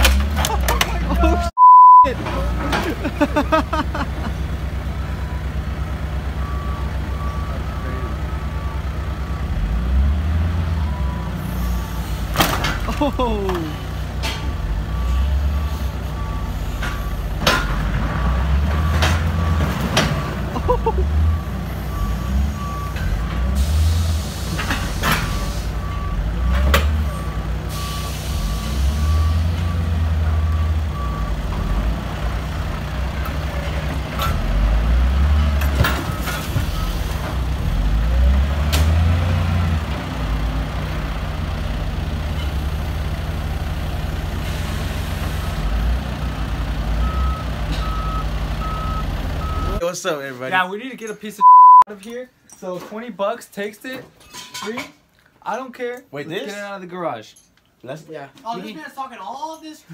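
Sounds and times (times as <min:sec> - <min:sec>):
diesel engine revving: 0:02.1 - 0:49.8
reversing alarm beeping: 0:06.4 - 0:09.5, 0:21.2 - 0:23.4, 0:47.0 - 0:49.8, 0:51.4 - 0:51.8.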